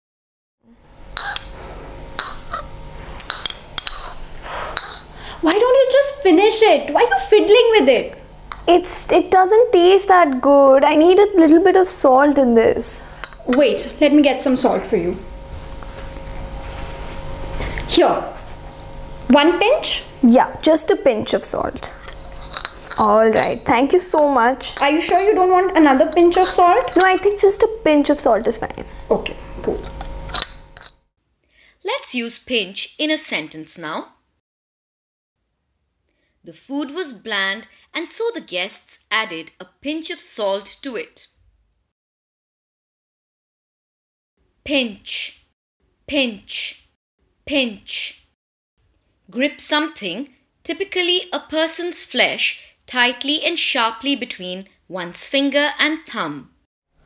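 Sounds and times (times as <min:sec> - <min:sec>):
metal spoon clinking on ceramic bowl: 0:03.2 - 0:04.2, 0:04.8 - 0:05.1, 0:13.2 - 0:13.6, 0:22.0 - 0:25.4, 0:29.8 - 0:31.0
woman speaking: 0:05.4 - 0:15.2, 0:17.9 - 0:18.4, 0:19.3 - 0:22.0, 0:23.0 - 0:29.9, 0:36.5 - 0:41.3, 0:44.7 - 0:45.4, 0:46.1 - 0:46.8, 0:47.5 - 0:48.2, 0:49.3 - 0:56.6.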